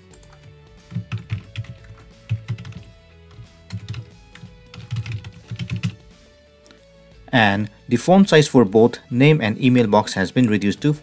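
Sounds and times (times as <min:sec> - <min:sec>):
computer keyboard typing: 0:00.0 - 0:06.0.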